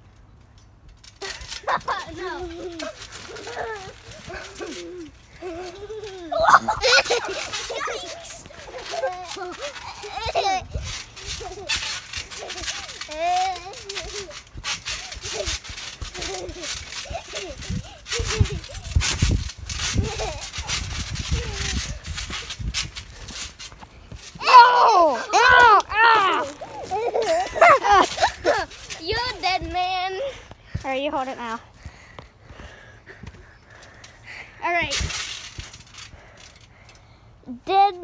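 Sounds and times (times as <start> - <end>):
trampoline thumps: 0.8 - 34.0, 34.6 - 36.7
child laughing high-pitched: 1.2 - 14.4, 15.0 - 19.1, 19.8 - 22.0, 24.4 - 30.4
children's voices and laughter: 1.2 - 22.7, 24.3 - 31.6.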